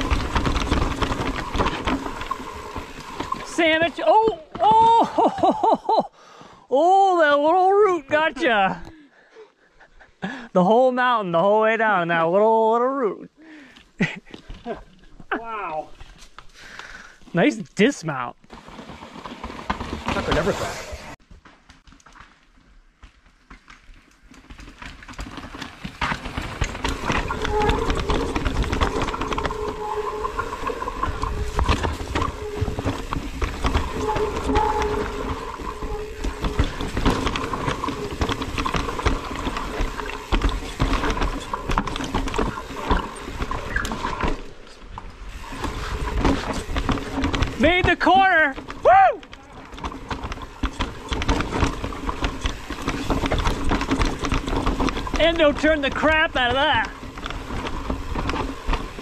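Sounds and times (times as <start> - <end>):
bike rattling over rocks: 0.0 - 5.9, 14.0 - 59.0
wind: 0.0 - 59.0.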